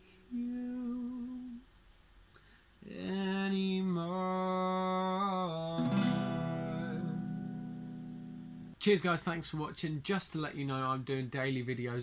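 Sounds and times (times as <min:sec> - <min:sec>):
man singing low note: 0:02.8 - 0:07.4.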